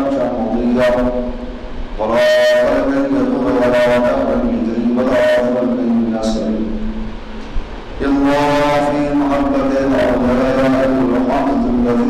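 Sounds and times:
man chanting: 0.0s - 7.0s, 8.0s - 12.0s.

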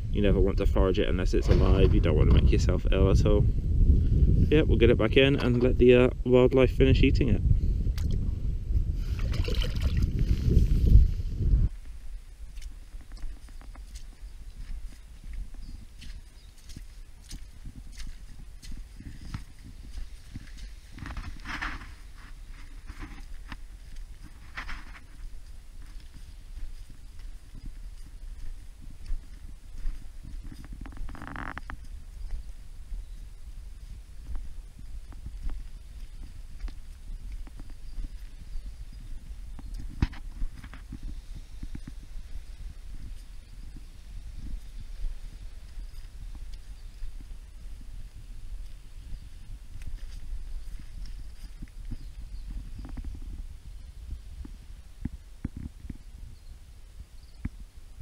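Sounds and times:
steady low rumble: 0.0s - 16.0s
footsteps on rock: 11.7s - 32.5s, 33.8s - 42.1s.

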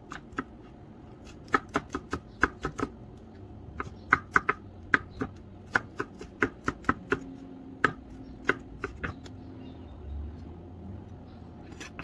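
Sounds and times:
knife chopping on wooden board: 1.2s - 3.0s, 3.7s - 9.3s.

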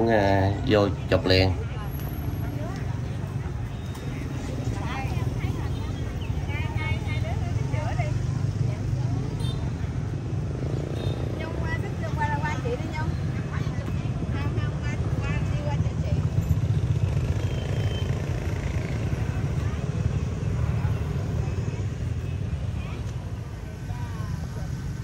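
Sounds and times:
faint chattering voices: 0.0s - 25.0s.

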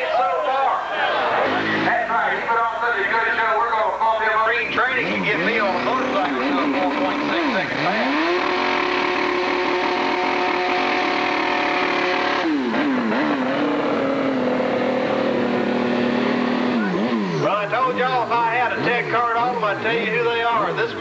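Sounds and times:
motorcycle engine revving: 1.3s - 2.1s, 4.7s - 21.0s.

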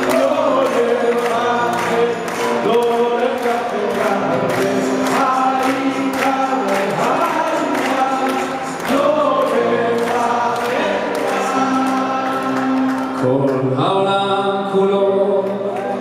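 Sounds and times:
choir singing: 0.0s - 13.3s.

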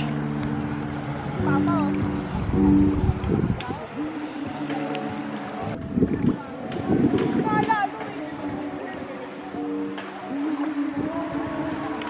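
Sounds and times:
wind buffeting microphone: 0.0s - 9.5s, 10.3s - 12.0s.

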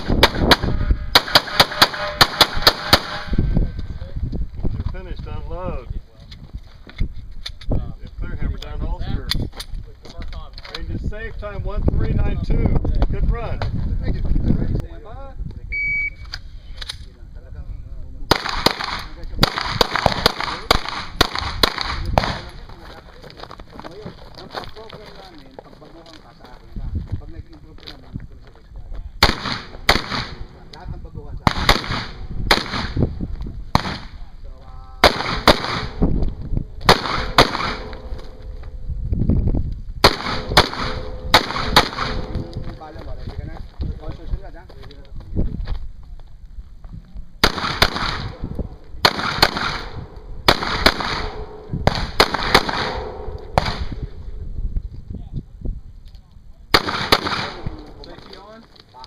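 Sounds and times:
rifle firing rapid shots: 0.0s - 3.2s, 18.3s - 22.5s, 29.2s - 30.5s, 31.5s - 33.0s, 35.0s - 36.0s, 36.9s - 38.0s, 40.0s - 42.3s, 47.4s - 48.3s, 49.0s - 53.9s, 56.7s - 57.8s
shot timer beep: 15.8s - 16.2s.

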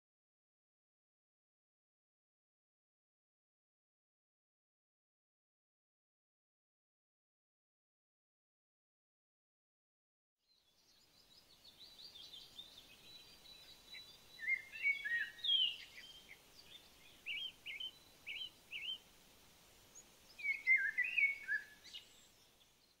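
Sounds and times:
faint outdoor hiss: 10.4s - 23.0s
birds chirping and trilling: 10.5s - 23.0s.

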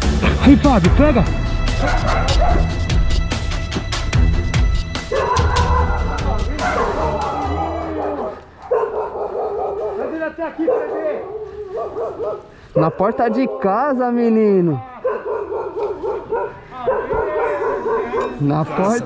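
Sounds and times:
background music with steady beat: 0.0s - 8.0s
dog barking and yelping: 1.8s - 2.7s, 5.1s - 7.2s, 7.9s - 14.1s, 15.0s - 18.6s.

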